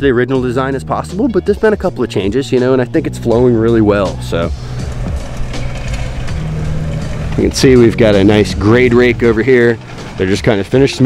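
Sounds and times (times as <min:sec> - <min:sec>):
machine engine running: 0:04.1 - 0:10.6.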